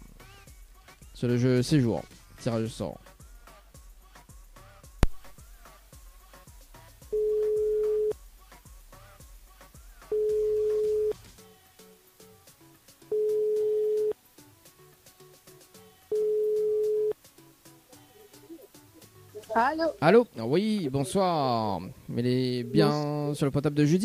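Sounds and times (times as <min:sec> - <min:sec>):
faint background music: 0:00.0 - 0:24.0
telephone ringback tone: 0:07.2 - 0:08.2, 0:10.1 - 0:11.2, 0:13.1 - 0:14.2, 0:16.1 - 0:17.2.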